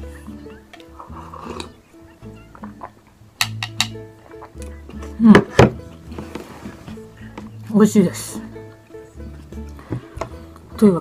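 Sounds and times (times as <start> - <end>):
light background music: 0.0 - 11.0.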